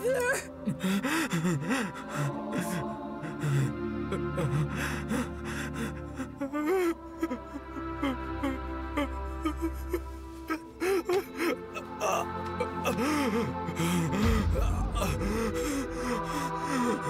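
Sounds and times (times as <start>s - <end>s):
dramatic background music: 0.0s - 17.0s
man sobbing and gasping: 0.0s - 17.0s
deep low rumble: 14.1s - 16.9s.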